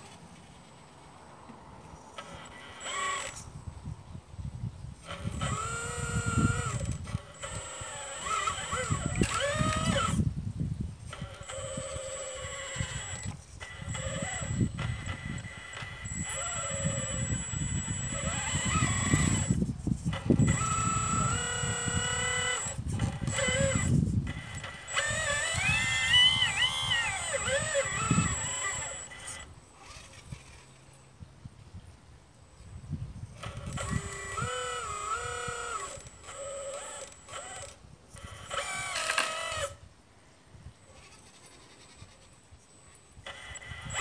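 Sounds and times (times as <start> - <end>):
electric motor whining: 2.2 - 3.6, 5.0 - 10.4, 11.0 - 30.5, 33.2 - 39.8, 43.2 - 44.0.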